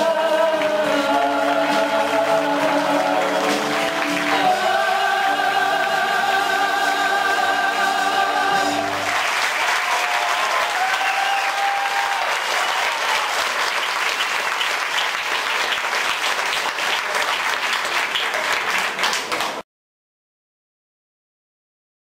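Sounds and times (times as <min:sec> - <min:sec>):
audience applauding: 0:00.5 - 0:06.8, 0:08.6 - 0:19.6.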